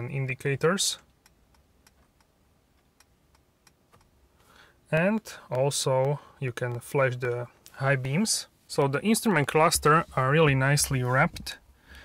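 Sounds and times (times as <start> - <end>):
turn signal ticking: 1.1 - 4.2.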